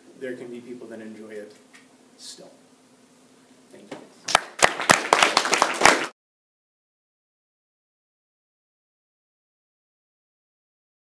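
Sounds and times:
audience applauding: 4.3 - 6.2.

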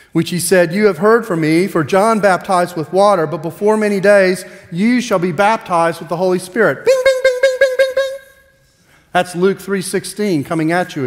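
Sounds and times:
man singing pulsing high note: 6.9 - 8.5.

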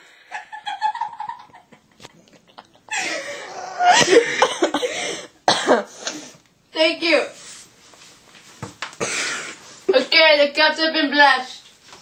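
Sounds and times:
person coughing harshly: 3.8 - 6.0.

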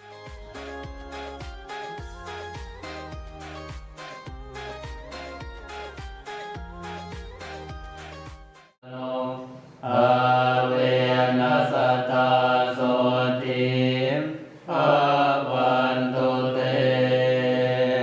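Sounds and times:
monks chanting in low drone: 8.8 - 18.0.

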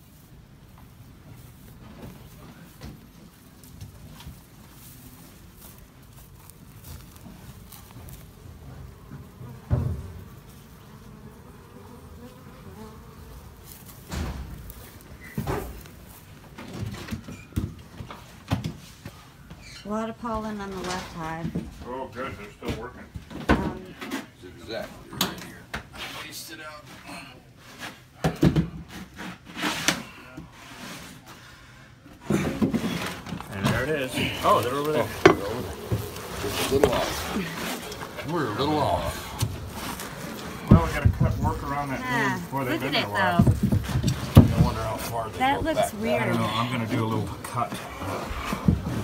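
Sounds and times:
honey bees buzzing: 5.9 - 16.4, 32.9 - 49.0
handling noise: 32.4 - 49.0
knocks on plywood floor: 43.4 - 44.8.

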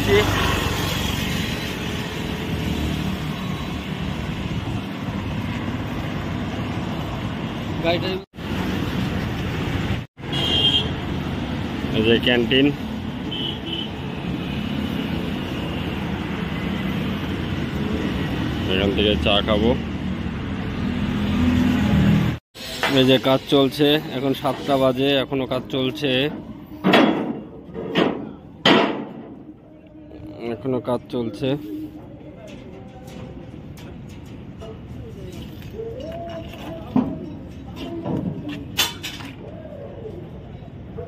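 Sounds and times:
road traffic: 0.0 - 41.0.

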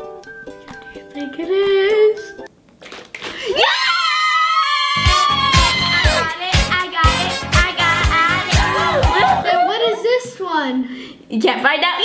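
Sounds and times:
child screaming with excitement: 3.6 - 6.4, 8.6 - 10.1.

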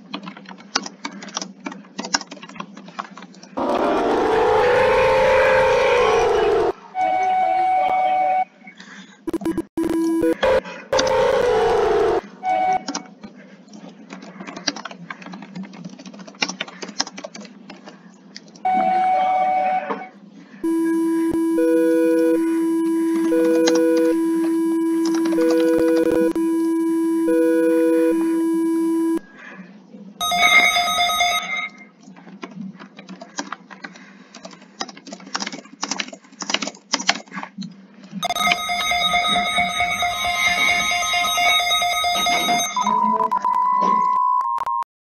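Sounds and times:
computer keyboard typing: 0.0 - 3.6, 9.3 - 12.2, 12.8 - 18.6, 20.6 - 29.2, 32.1 - 37.5
multi-tone alarm bursts: 3.6 - 8.5, 9.3 - 12.9, 20.6 - 29.3, 30.2 - 31.6, 38.2 - 44.0
steady low alarm tone: 3.6 - 8.5, 9.3 - 12.9, 20.6 - 29.3, 30.2 - 31.6, 38.2 - 44.1
higher beep: 20.6 - 29.2.

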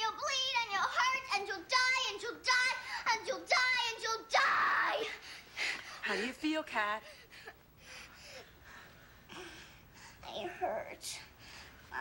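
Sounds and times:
girl's anguished wailing cries: 4.4 - 5.2.

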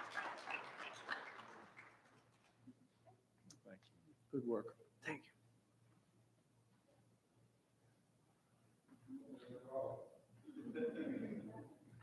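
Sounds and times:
audience applause: 0.0 - 2.4.

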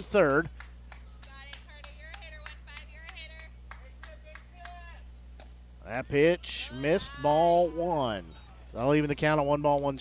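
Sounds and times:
crowd clapping: 0.0 - 5.5
steady low hum: 0.0 - 10.0
high-pitched voices calling out: 5.8 - 8.7.

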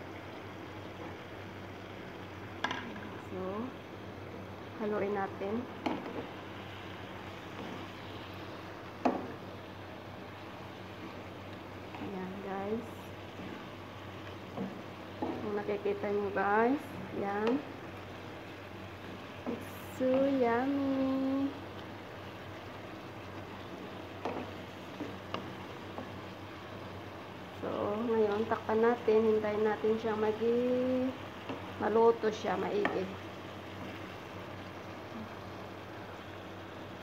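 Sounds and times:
sauce simmering in frying pan: 0.0 - 37.0
wooden spoon stirring: 5.8 - 27.6, 28.2 - 34.6
wooden spatula knocking pan: 9.0 - 9.4.

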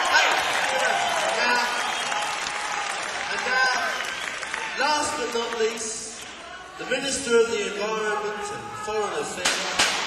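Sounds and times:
audience applauding and cheering: 0.0 - 6.3.

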